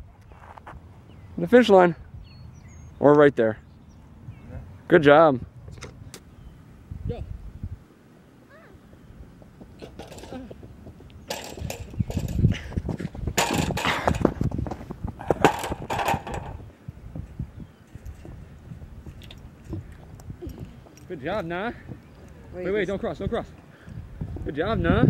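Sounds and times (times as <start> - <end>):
running footsteps on rubber track: 8.8 - 15.5, 17.0 - 22.5.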